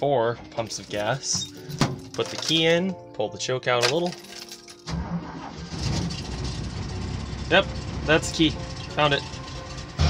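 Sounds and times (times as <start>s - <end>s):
car engine starting and running: 4.7s - 10.0s.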